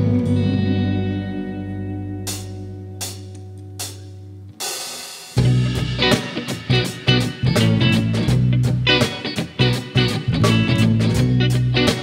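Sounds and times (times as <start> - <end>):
bass notes: 0.0 - 4.8, 5.4 - 12.0
electric guitar chords with echo: 0.0 - 12.0.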